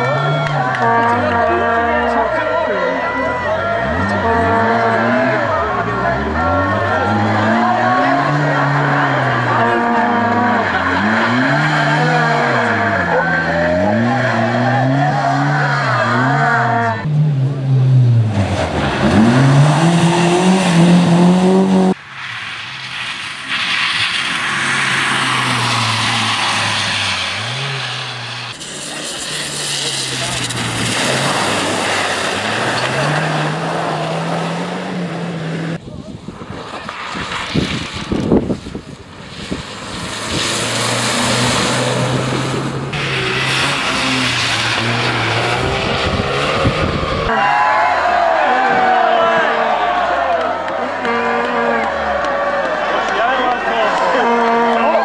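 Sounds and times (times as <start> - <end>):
rally cars revving past: 0.0 - 35.8, 36.5 - 55.0
tyre and road noise: 0.0 - 55.0.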